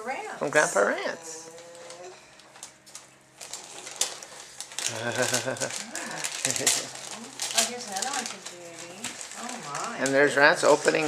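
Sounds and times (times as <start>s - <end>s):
wrapping paper crinkling: 1.5s - 11.0s.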